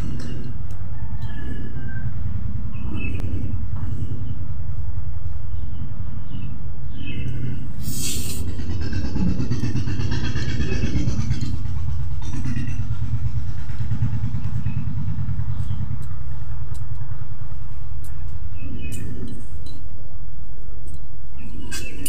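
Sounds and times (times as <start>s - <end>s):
low rumble: 0.0s - 22.0s.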